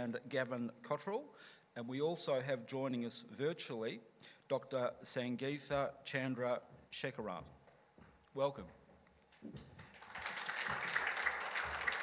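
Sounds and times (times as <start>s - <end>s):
audience applause: 9.8s - 12.0s.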